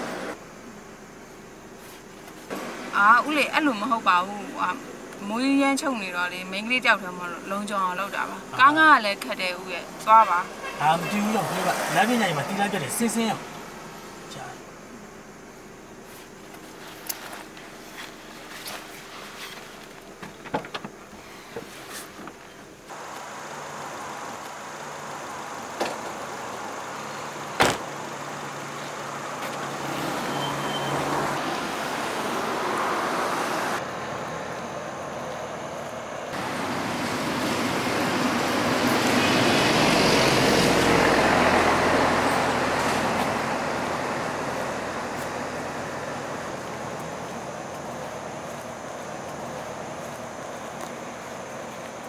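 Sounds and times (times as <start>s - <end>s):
road noise: 0.0s - 52.0s
vehicle passing: 2.5s - 14.6s, 22.9s - 52.0s
sharp knock: 27.6s - 27.9s.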